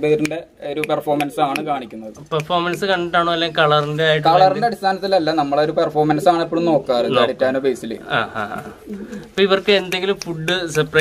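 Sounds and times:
man's voice: 0:00.0 - 0:11.0
pigeon cooing: 0:08.1 - 0:09.4.

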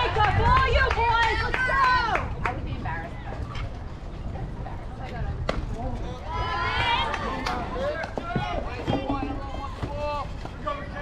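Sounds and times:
voices calling and shouting: 0:00.0 - 0:11.0.

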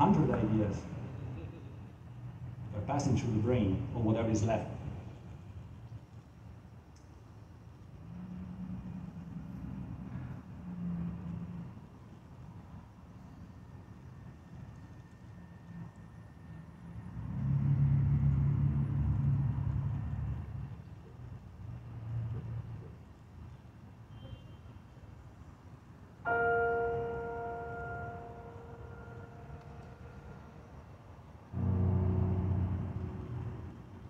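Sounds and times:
bell-like tone: 0:26.3 - 0:30.2
low rumble: 0:31.4 - 0:34.0.

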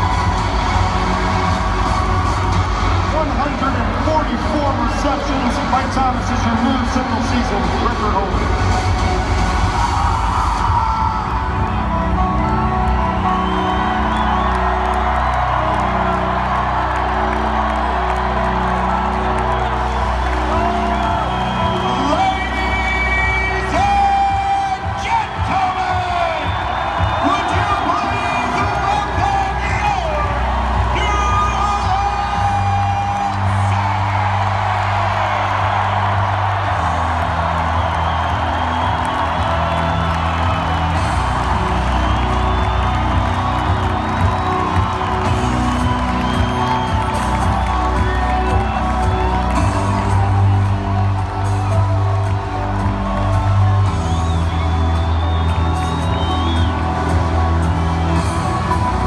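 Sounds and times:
crowd cheering and whooping: 0:00.0 - 0:59.0
loud music with heavy bass: 0:00.0 - 0:59.0.

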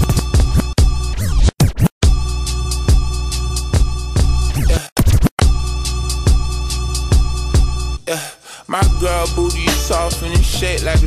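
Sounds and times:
slowed hip hop beat: 0:08.7 - 0:11.0.

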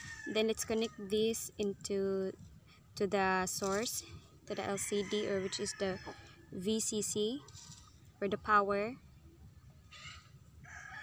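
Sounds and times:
faint animal call: 0:09.9 - 0:10.3.

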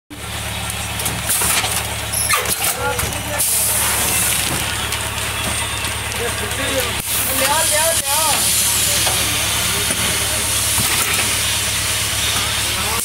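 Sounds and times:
air hissing bursts: 0:07.0 - 0:12.0.

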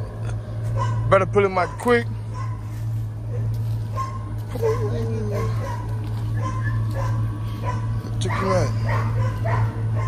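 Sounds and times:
steady low hum: 0:00.0 - 0:10.0
dog whining and yipping: 0:04.0 - 0:10.0.

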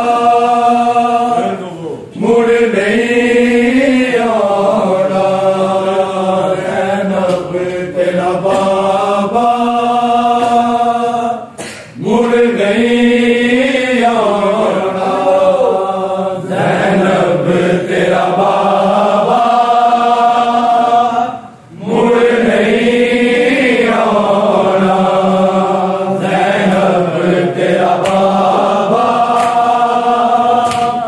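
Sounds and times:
men chanting a lament: 0:00.0 - 0:31.0.

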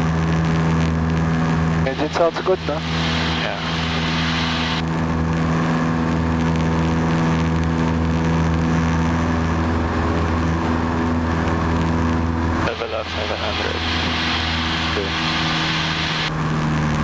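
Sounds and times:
airplane engine and propeller droning: 0:00.0 - 0:17.0.

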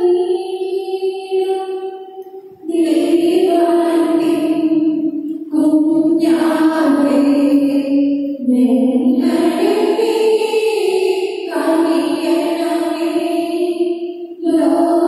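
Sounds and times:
person singing a hymn: 0:00.0 - 0:15.0.

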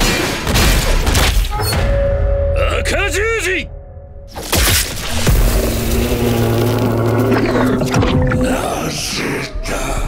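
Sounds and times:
monster roar: 0:05.4 - 0:10.0.

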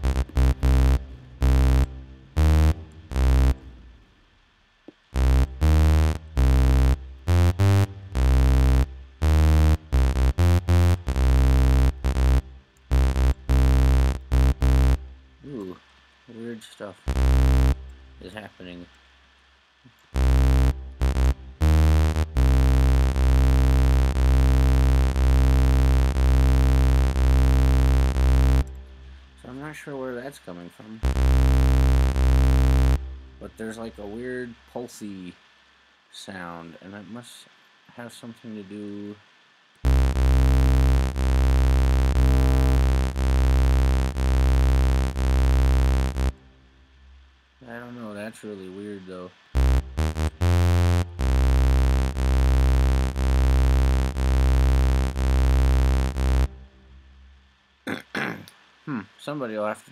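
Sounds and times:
buzzy synth bass tone wobbling: 0:00.0 - 0:04.0, 0:05.1 - 0:15.7, 0:17.1 - 0:18.4, 0:20.2 - 0:29.8, 0:31.0 - 0:34.5, 0:39.8 - 0:46.5, 0:49.6 - 0:57.0.

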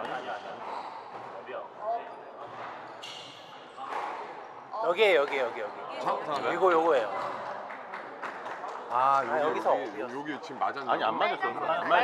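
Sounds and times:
squash ball hits and rebounds: 0:03.8 - 0:04.4.

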